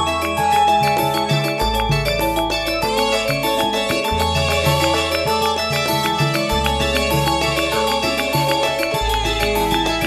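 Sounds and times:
live band instrumental music: 0.0s - 10.0s
steady percussion beat: 0.0s - 10.0s.

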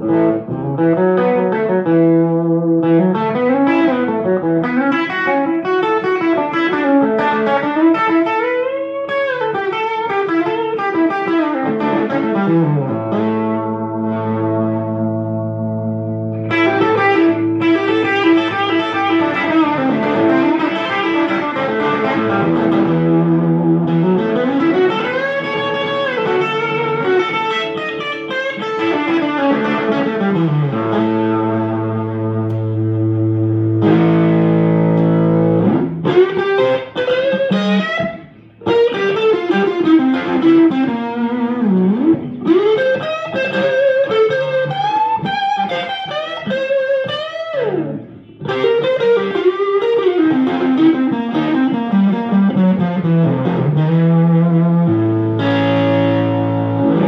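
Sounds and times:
clean electric guitar: 0.0s - 57.0s.

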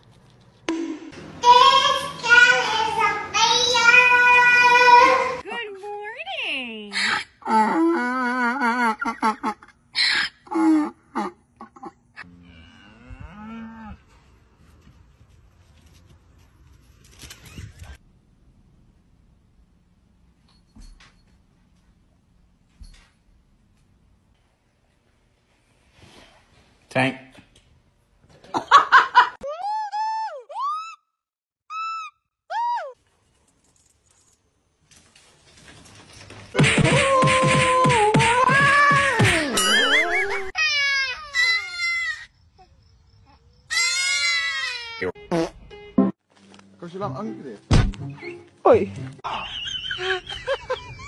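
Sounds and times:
donkey braying: 36.8s - 41.6s.

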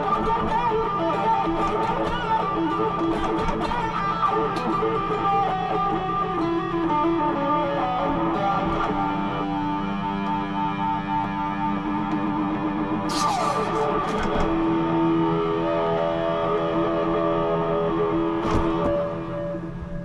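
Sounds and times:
guitar solo: 0.0s - 20.0s.

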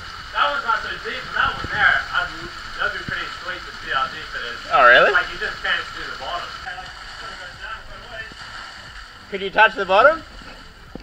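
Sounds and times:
small waterfall rushing: 0.0s - 11.0s
people talking: 0.4s - 8.3s, 9.3s - 10.2s.

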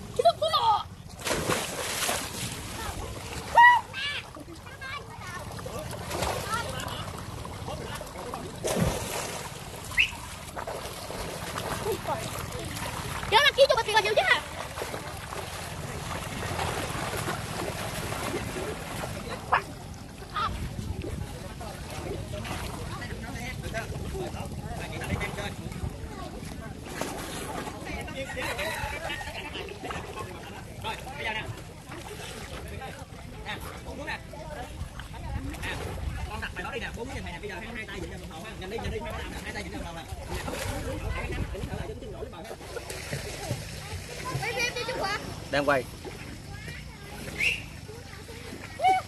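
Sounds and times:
pool water splashing: 0.0s - 49.0s
wind rumbling on microphone: 5.5s - 30.8s, 34.4s - 42.4s.

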